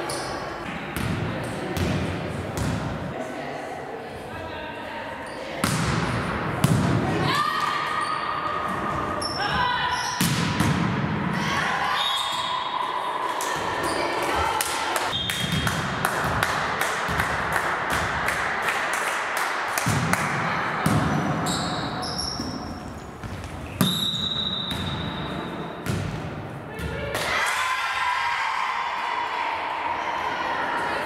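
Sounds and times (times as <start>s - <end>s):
volleyball hits and thuds: 5.6s - 7.1s, 10.2s - 11.2s, 19.8s - 21.5s, 25.8s - 27.0s.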